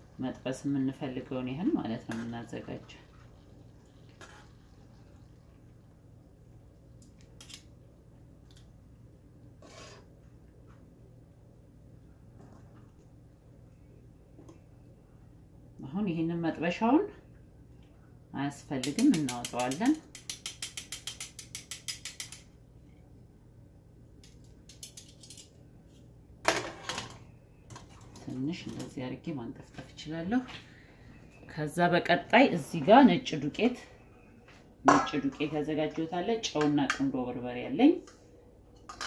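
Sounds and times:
faint low hum: 0.0s - 20.0s, 22.4s - 39.0s
metal tongs clicking on strainer: 18.8s - 22.4s.

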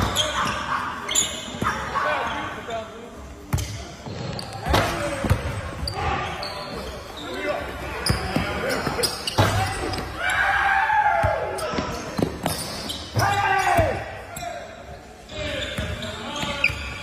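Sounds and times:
players' voices echoing: 0.0s - 17.0s.

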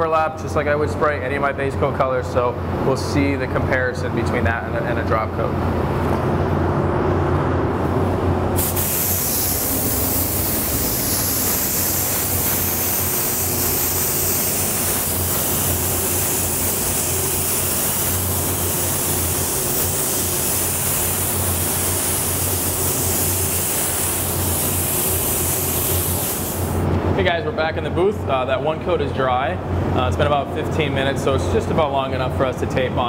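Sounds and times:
steady low hum: 0.0s - 33.0s
spray gun hissing air: 8.6s - 26.8s.

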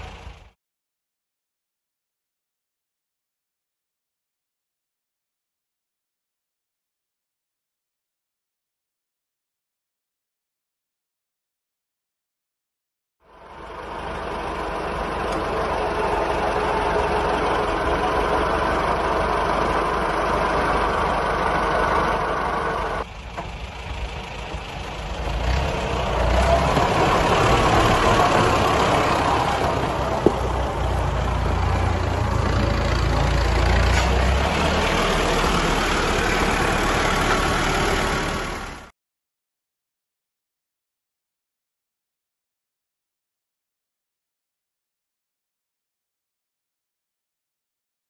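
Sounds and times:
tractor engine running: 0.0s - 0.6s, 13.2s - 38.9s
tyres on gravel track: 0.0s - 0.6s, 13.2s - 38.9s.

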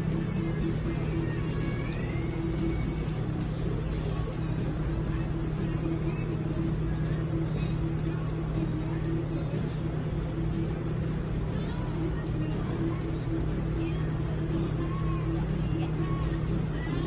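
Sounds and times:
faint murmur of voices: 0.0s - 17.0s
low machine hum: 0.0s - 17.0s.

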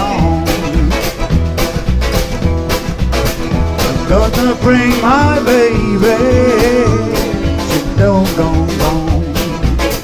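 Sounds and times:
accordion: 0.0s - 10.0s
drums with driving beat: 0.0s - 10.0s
electric guitar: 0.0s - 10.0s.

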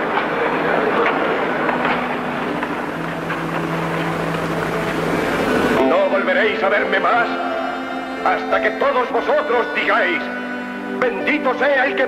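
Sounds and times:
crowd murmuring: 0.0s - 12.0s.

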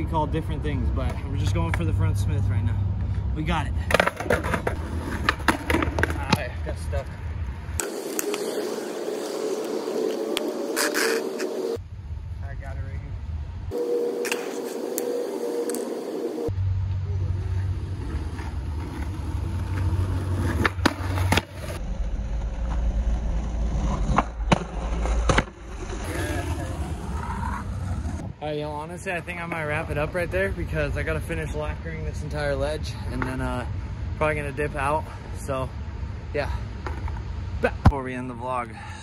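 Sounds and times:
skateboard wheels rolling on asphalt: 3.9s - 11.8s, 13.8s - 31.6s.

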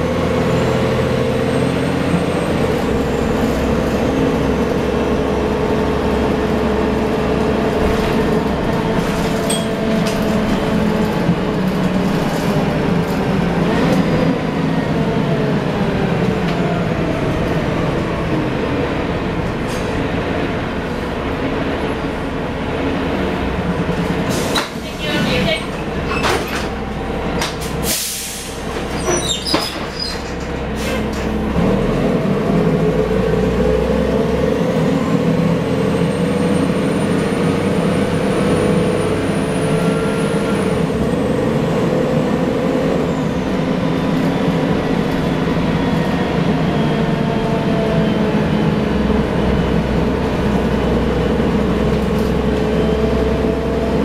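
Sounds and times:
bus diesel engine: 0.0s - 54.0s.

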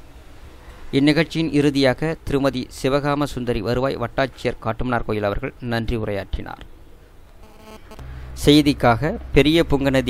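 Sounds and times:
faint background noise: 0.0s - 10.0s
faint buzzing: 7.0s - 8.4s.

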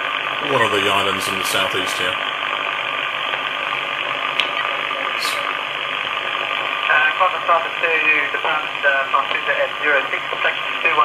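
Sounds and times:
radio static hiss: 0.0s - 11.0s
weak voice over radio: 4.6s - 5.5s, 6.9s - 11.0s.

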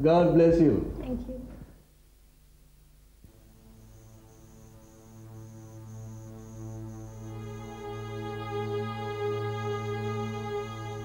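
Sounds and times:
cricket chirping: 3.2s - 11.0s
low humming drone: 3.3s - 11.0s.

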